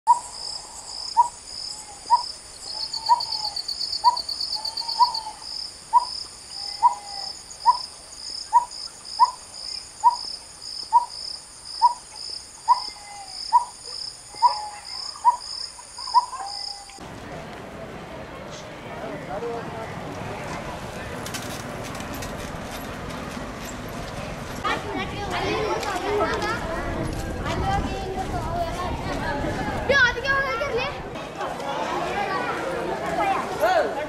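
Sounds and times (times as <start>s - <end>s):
high-pitched insect drone: 0.1s - 12.0s.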